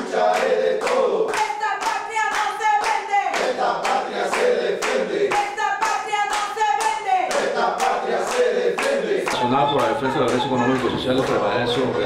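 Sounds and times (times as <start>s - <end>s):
people clapping in rhythm: 0.0s - 12.0s
voices singing a held note: 7.5s - 12.0s.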